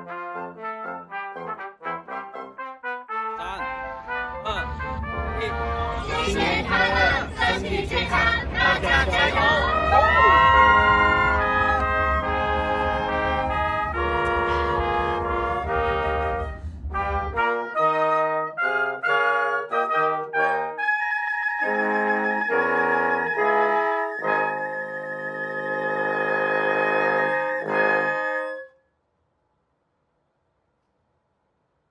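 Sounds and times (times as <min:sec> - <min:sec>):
wind band playing: 0:00.0 - 0:28.7.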